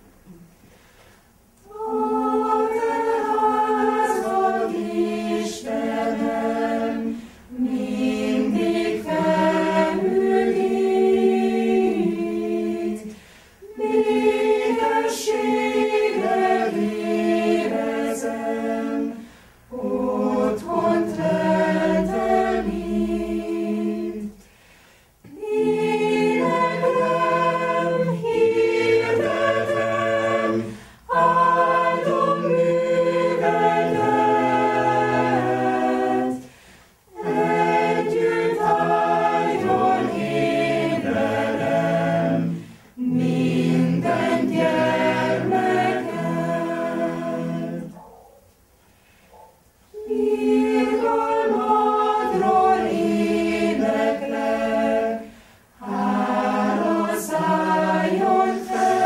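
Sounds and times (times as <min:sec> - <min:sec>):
choir singing unaccompanied: 0:01.6 - 0:24.4, 0:25.2 - 0:48.1, 0:49.9 - 0:59.0.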